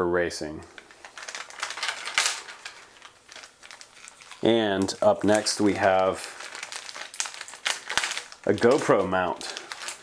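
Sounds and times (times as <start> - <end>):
packaging crinkling: 0.7 - 10.0.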